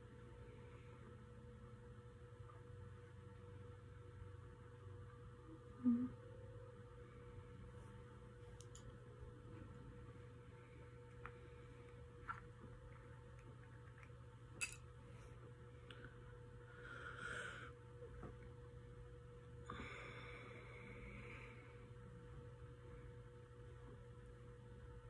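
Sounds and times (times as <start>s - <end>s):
low hum: 0.0s - 25.0s.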